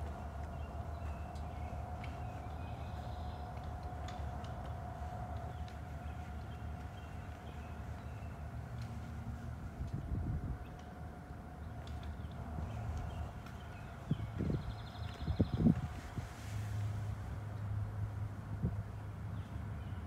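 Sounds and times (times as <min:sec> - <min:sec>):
faint high hum: 0:00.0 - 0:18.8
wind gust on microphone: 0:14.0 - 0:16.5.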